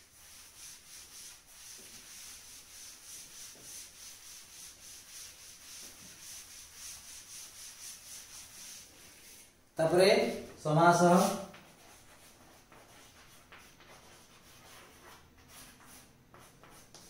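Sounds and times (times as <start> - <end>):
duster wiping chalkboard: 0.0 - 17.0.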